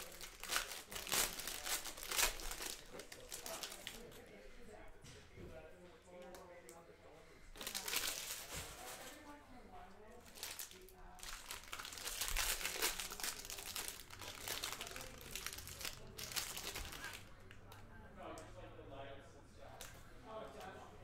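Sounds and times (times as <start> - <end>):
foil wrappers crinkling: 0.0 - 4.1, 7.6 - 9.4, 10.2 - 17.8.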